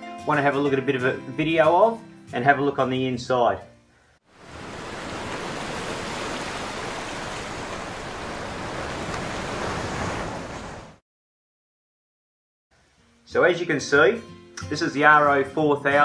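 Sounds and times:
rushing water: 4.3 - 11.0.

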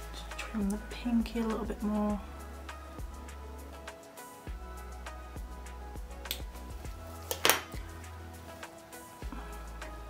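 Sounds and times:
background music with low bass: 0.0 - 10.0.

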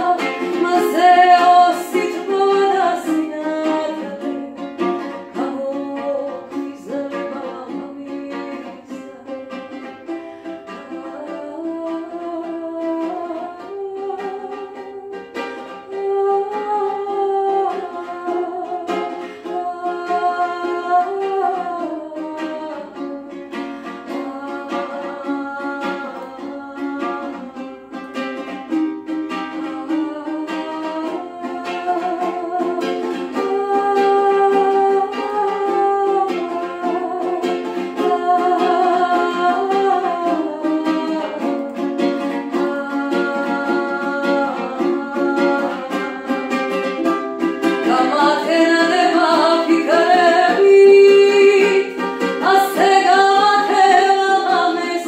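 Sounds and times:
strummed ukulele: 0.0 - 55.0
woman singing: 0.0 - 55.0.

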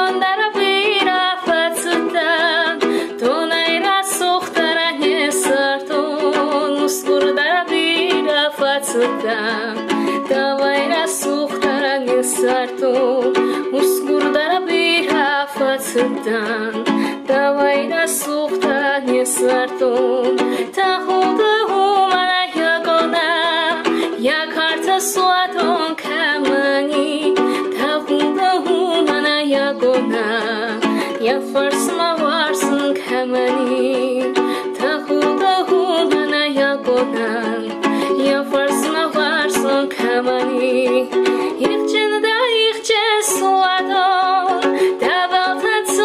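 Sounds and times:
strummed ukulele: 0.0 - 46.0
woman singing with vibrato: 0.0 - 46.0.

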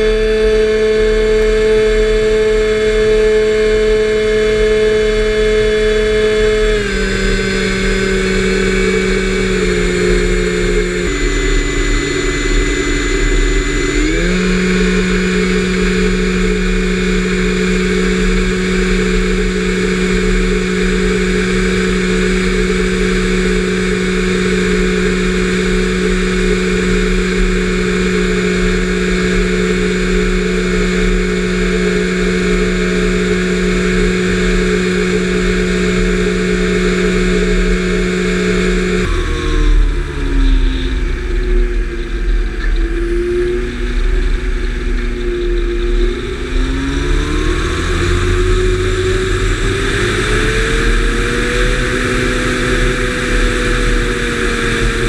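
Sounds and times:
model plane motor whine: 0.0 - 55.0.

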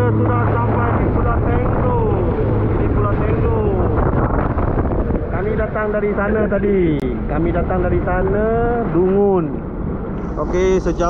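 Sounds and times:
jet ski engine running: 0.0 - 11.0
wind rushing: 0.0 - 11.0.

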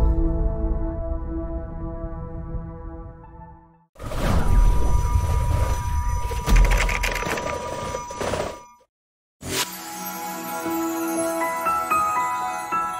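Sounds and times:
steady high ringing tone: 4.5 - 8.8
sparkling bell-like chime: 9.7 - 12.9.

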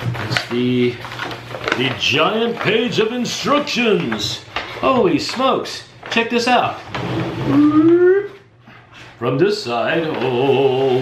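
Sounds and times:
paper sheet rustling: 0.0 - 5.7
voice-like call rising in pitch: 7.4 - 8.4.

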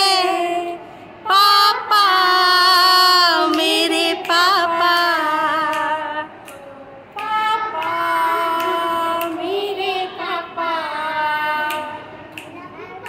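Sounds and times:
girls singing unaccompanied: 0.0 - 13.0.

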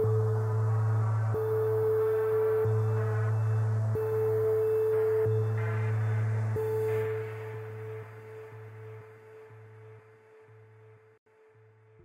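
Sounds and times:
soft synth pulse: 0.0 - 10.9
sustained synth pad notes: 0.0 - 11.0.

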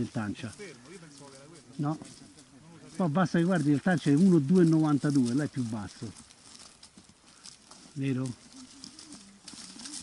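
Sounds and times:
footsteps on leaf litter: 0.0 - 10.0
trekking poles tapping: 0.0 - 10.0.

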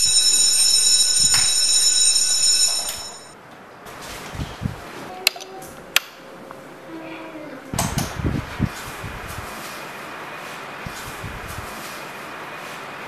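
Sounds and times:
electric bell ringing: 0.0 - 3.4.

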